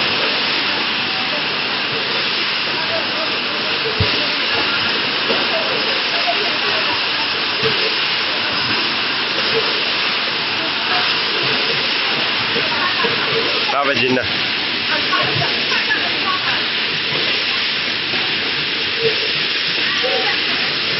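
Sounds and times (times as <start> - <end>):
machine hissing: 0.0 - 20.9.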